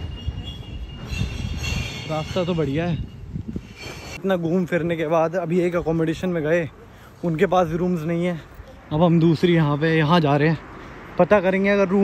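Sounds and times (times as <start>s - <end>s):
high-pitched squeal: 0.0s - 4.2s.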